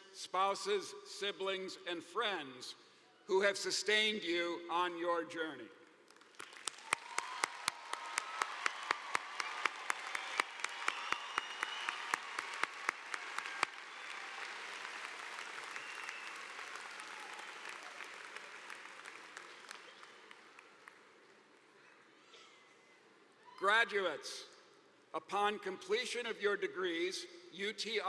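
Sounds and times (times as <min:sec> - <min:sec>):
large crowd applauding: 0:06.1 - 0:21.5.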